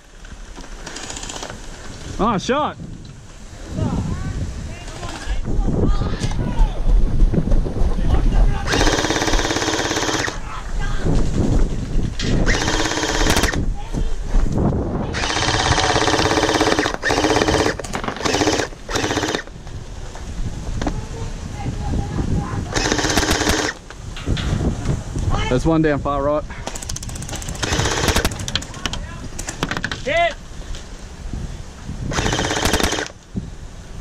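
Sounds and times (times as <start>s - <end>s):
wind rumble on microphone: 1.5s - 34.0s
gel blasters firing bursts: 8.6s - 10.4s, 12.4s - 13.6s, 15.1s - 19.5s, 22.7s - 23.8s, 26.7s - 28.5s, 32.1s - 33.1s.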